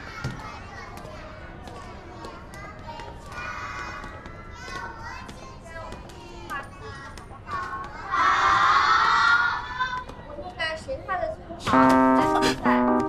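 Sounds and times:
young children chattering: 0.0 - 12.7.

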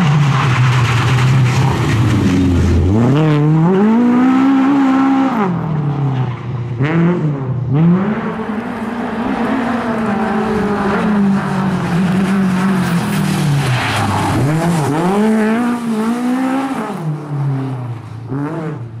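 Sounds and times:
car engine revving hard: 2.3 - 5.6, 6.8 - 17.1.

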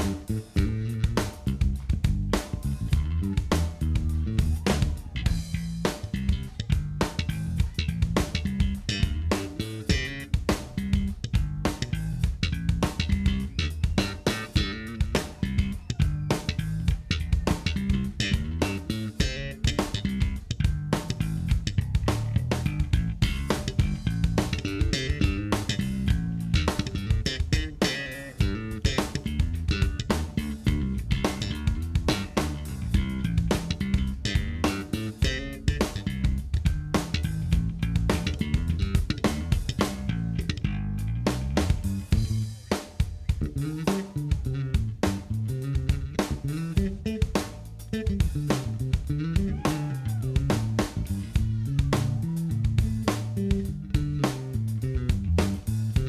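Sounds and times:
electric bass guitar plucked notes: 0.0 - 56.0.

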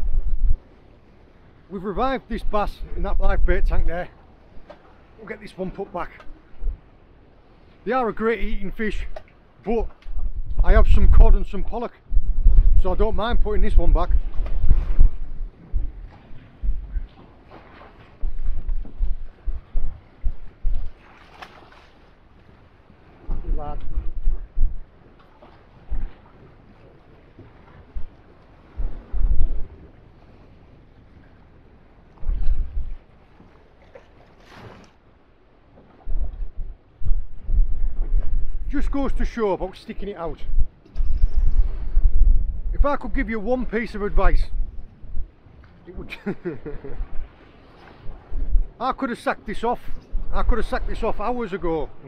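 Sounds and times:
choppy sea washing: 0.0 - 52.0
wind buffeting microphone: 0.0 - 52.0.

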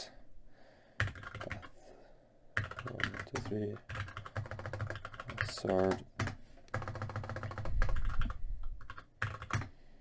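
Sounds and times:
typing on computer keyboard: 1.0 - 1.7, 2.6 - 9.7.

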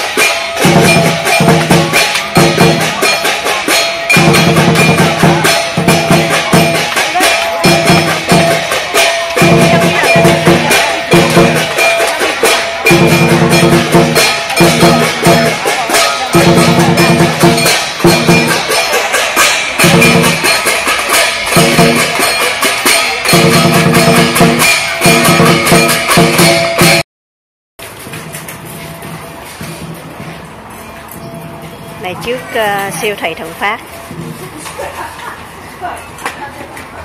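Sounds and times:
drum and cymbal percussion: 0.0 - 27.0, 27.8 - 35.5.

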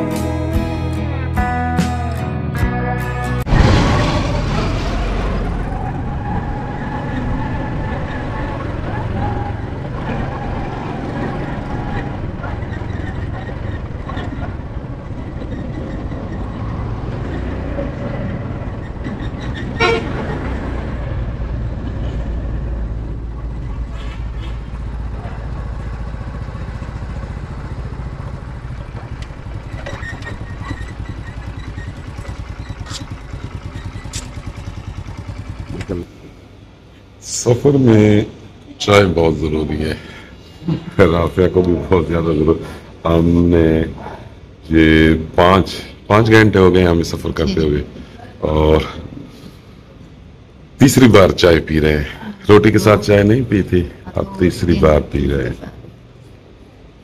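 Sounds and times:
road and wind noise: 3.3 - 57.0
vehicle horn toot: 19.8 - 20.4
motorcycle engine running: 22.8 - 36.8.

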